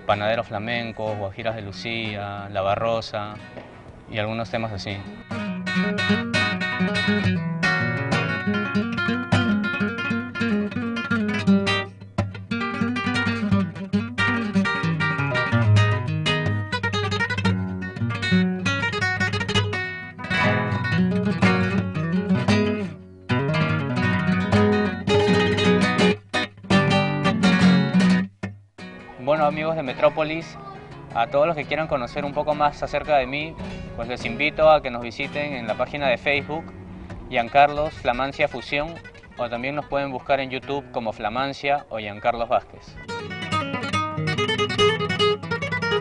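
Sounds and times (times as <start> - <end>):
flamenco acoustic guitar: 0.0 - 46.0.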